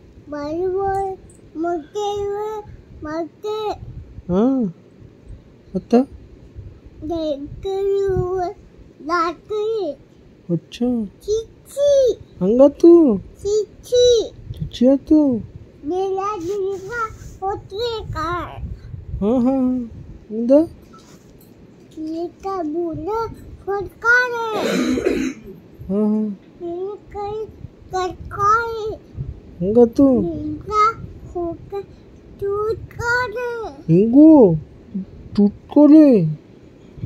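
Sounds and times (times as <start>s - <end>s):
toddler girl singing: 0.3s - 3.8s, 22.0s - 24.7s, 26.6s - 29.0s, 30.2s - 33.8s
toddler vocal sounds: 15.9s - 18.7s
toddler throat-clearing sound: 24.5s - 25.6s.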